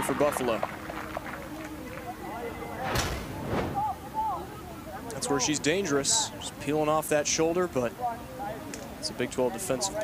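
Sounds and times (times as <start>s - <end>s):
outdoor background noise: 0.0s - 10.0s
ball kicked thud: 2.9s - 3.9s.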